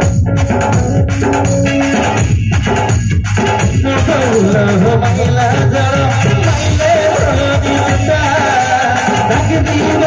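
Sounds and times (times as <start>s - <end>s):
drums: 0.0s - 10.0s
electric guitar: 0.0s - 10.0s
keyboard: 0.0s - 10.0s
live band instrumental: 0.0s - 10.0s.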